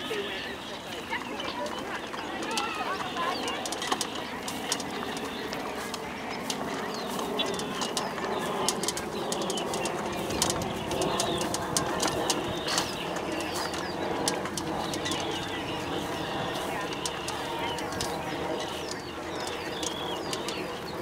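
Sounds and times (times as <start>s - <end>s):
murmur of background voices: 0.0s - 21.0s
toy wagon rattling on dirt path: 0.0s - 21.0s.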